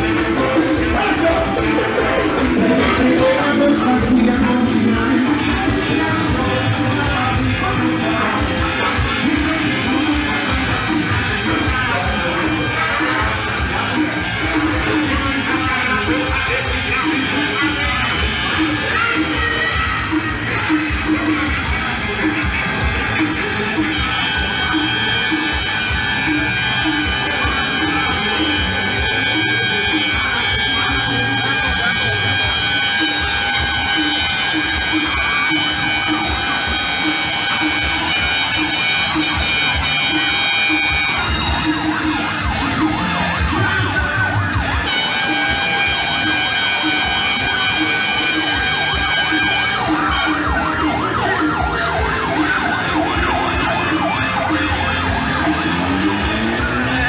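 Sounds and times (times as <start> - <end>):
music: 0.0 - 57.0
sirens and horns: 0.0 - 57.0
voices: 0.0 - 57.0.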